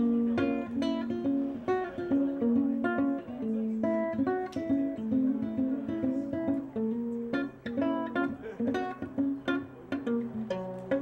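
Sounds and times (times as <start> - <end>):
ukulele plucked melody: 0.0 - 11.0
ukulele strummed chords: 0.0 - 11.0.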